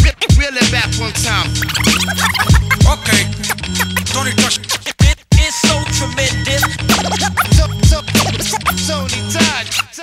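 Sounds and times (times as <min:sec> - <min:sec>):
bass line: 0:00.6 - 0:05.0, 0:05.6 - 0:09.8
turntable scratches: 0:01.5 - 0:10.0
drum beat: 0:01.6 - 0:05.8, 0:06.5 - 0:08.8.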